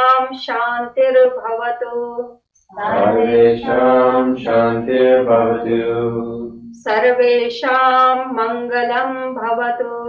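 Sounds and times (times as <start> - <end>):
person chanting a sung melody: 1.8 - 10.0.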